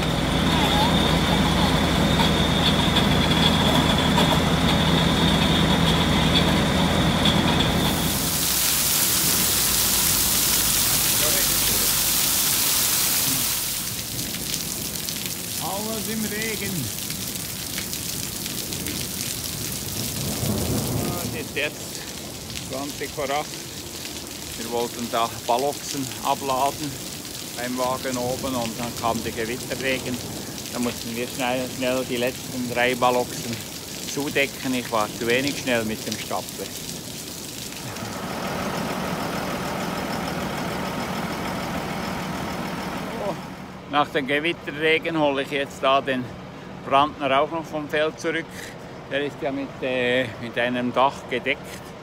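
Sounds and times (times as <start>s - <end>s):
tractor engine idling: 0.0s - 12.5s, 37.8s - 43.9s
heavy rain on pavement: 0.0s - 43.8s
thunder rumbling: 18.4s - 23.7s.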